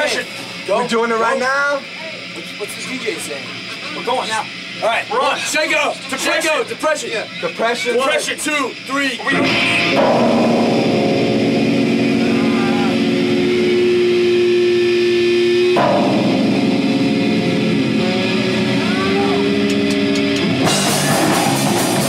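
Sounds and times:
electric guitar chords: 9.2 - 22.0
rock band with drums: 9.2 - 22.0.

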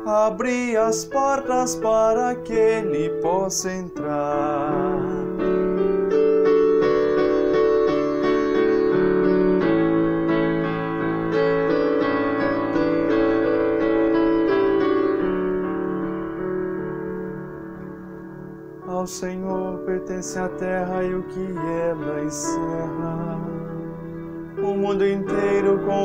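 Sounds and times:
electronic keyboard piano melody: 0.0 - 26.0.

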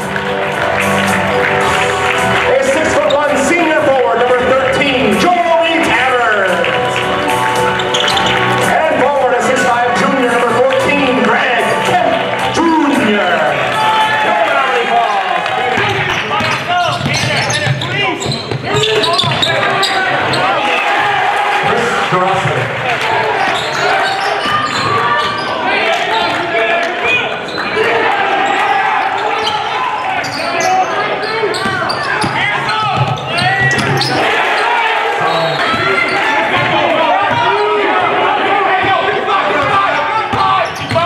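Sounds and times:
shouts echoing in a gym: 1.4 - 41.0.

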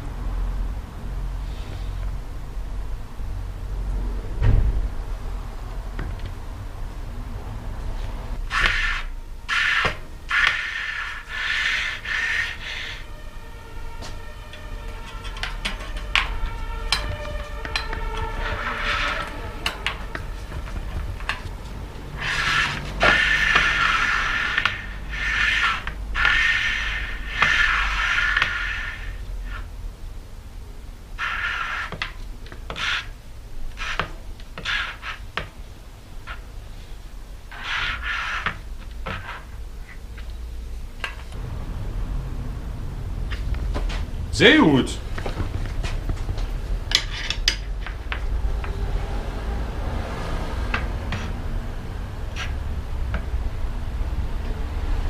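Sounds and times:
bicycle wheel rubbing squeal: 8.4 - 21.4, 22.1 - 29.7, 31.2 - 35.4, 37.5 - 40.0, 52.3 - 52.6.

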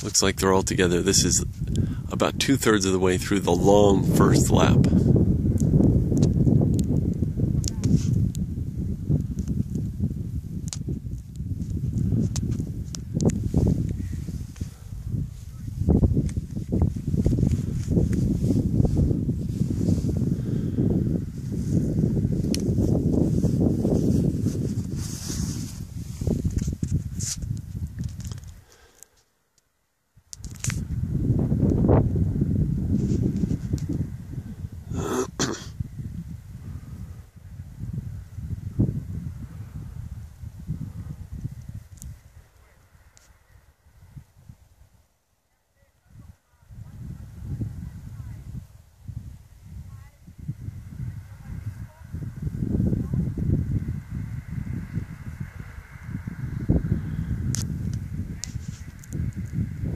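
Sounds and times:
wind buffeting microphone: 0.0 - 28.7, 30.2 - 45.1, 46.0 - 59.9.

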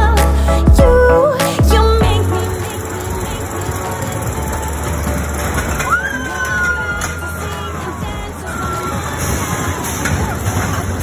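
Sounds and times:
roller coaster wheels rumbling on rail: 2.1 - 11.0.

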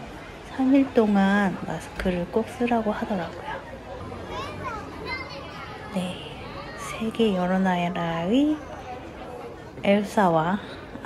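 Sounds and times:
crowd noise: 0.0 - 11.0
young children chattering: 0.0 - 11.0.

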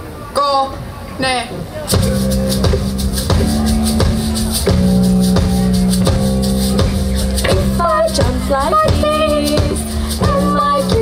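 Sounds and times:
live band playing: 1.4 - 11.0
shaken percussion: 1.9 - 11.0
woman singing: 7.5 - 11.0.

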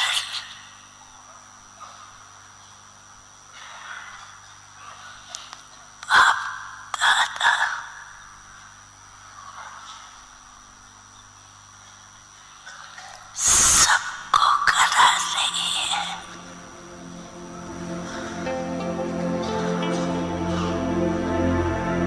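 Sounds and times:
soft music: 16.1 - 22.0.

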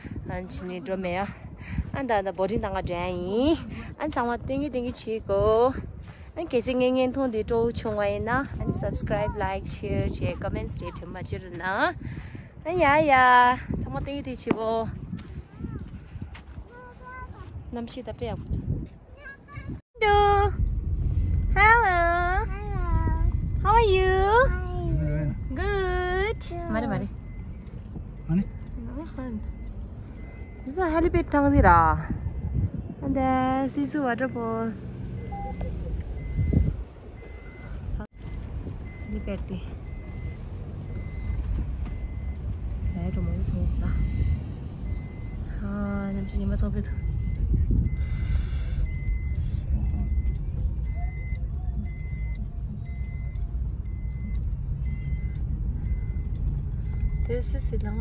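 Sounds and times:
car cabin rumble: 20.0 - 58.0
faint high beep: 20.2 - 58.0.

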